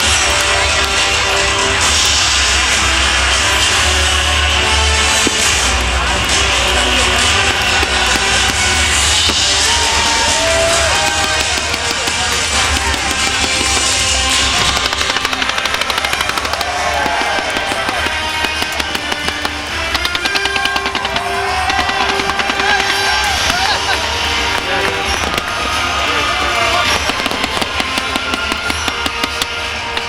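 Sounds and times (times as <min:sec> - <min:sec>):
fireworks pops and crackles: 0:00.0 - 0:30.0
loud show soundtrack music: 0:00.0 - 0:30.0.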